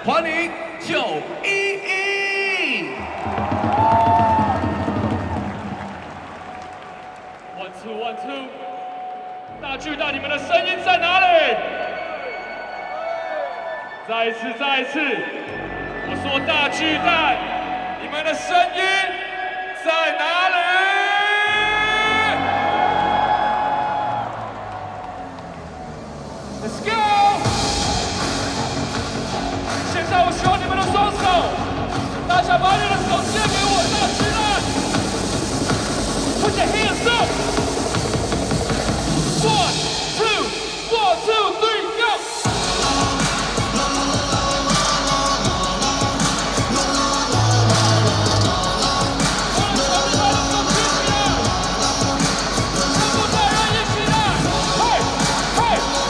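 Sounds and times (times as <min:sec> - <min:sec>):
man shouting over loudspeaker: 0:00.0 - 0:04.6, 0:16.1 - 0:23.7, 0:26.6 - 0:27.9, 0:29.9 - 0:31.7, 0:32.3 - 0:34.9, 0:36.4 - 0:37.6, 0:39.4 - 0:43.1, 0:49.6 - 0:52.0, 0:52.8 - 0:56.0
music playing: 0:00.0 - 0:56.0
crowd applauding and cheering: 0:01.2 - 0:15.8, 0:21.6 - 0:40.9, 0:42.3 - 0:56.0.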